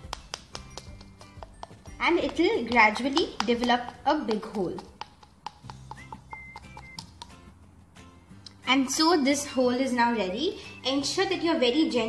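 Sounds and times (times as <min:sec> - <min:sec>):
spoon tapping on shell: 0:00.0 - 0:07.5
quiet background music: 0:00.0 - 0:12.0.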